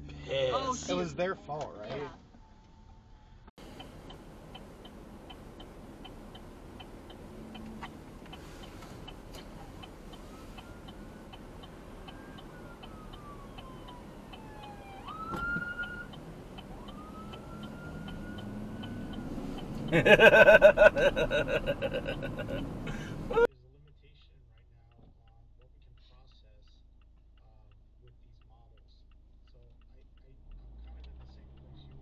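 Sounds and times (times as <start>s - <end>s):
steady ticking: 3.6s - 32.0s
police siren wailing: 9.3s - 23.5s.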